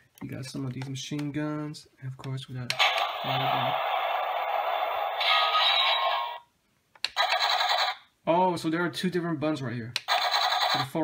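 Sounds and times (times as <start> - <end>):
toy electronic battle sound: 2.8 - 6.4, 7.1 - 8.0, 10.0 - 11.0.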